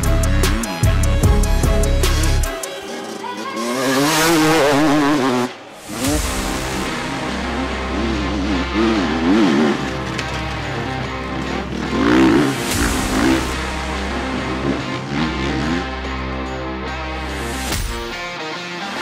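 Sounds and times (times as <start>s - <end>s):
background music with bass line: 0.0s - 3.2s, 4.0s - 19.0s
dirt bike engines revving: 0.0s - 19.0s.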